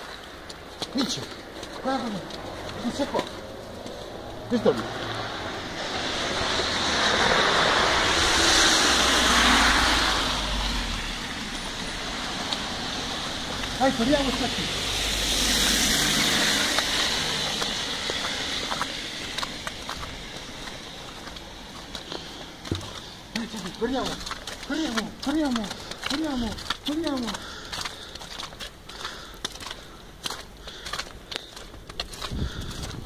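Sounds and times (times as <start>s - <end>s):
tyres hissing on wet road: 3.5s - 28.1s.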